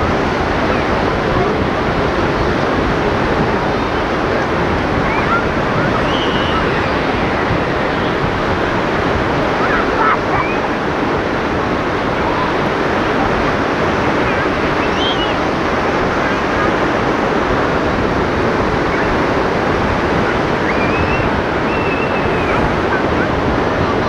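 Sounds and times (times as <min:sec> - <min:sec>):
sea surf washing onto beach: 0:00.0 - 0:24.0.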